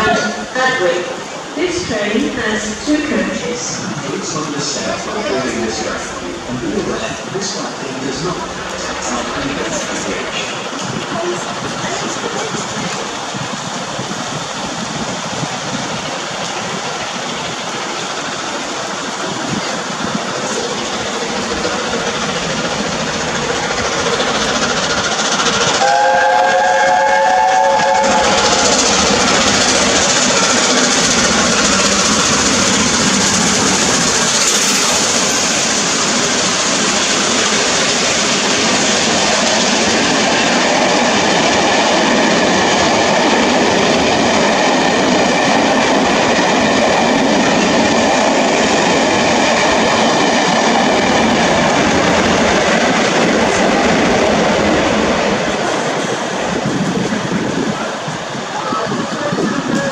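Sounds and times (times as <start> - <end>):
train wheels rushing on rails: 0.0 - 59.9
steam locomotive chime whistle: 25.8 - 28.6.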